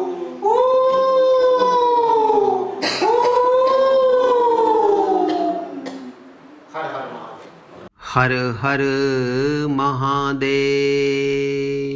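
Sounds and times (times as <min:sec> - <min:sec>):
man singing sustained note: 0:08.1 - 0:11.9.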